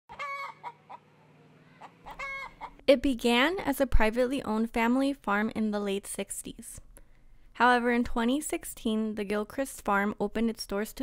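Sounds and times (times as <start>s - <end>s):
hen clucking: 0.1s - 2.8s.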